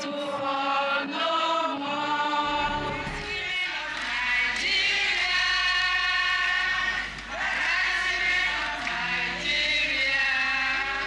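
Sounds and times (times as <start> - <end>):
voices singing a chant-like song: 0.0 - 11.0.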